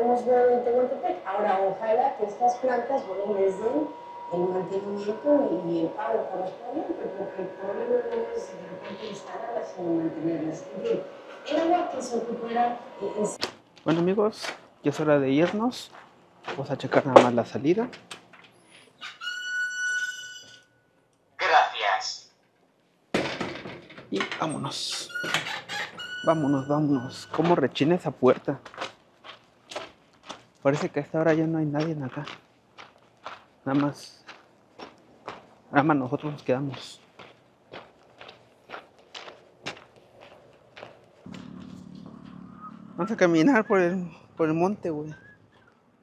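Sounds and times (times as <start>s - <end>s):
steady low hum: 0.0s - 18.1s, 34.4s - 44.5s
footsteps walking: 13.4s - 17.4s, 28.3s - 43.0s
door hinges squeaking: 17.9s - 20.8s, 23.2s - 27.8s.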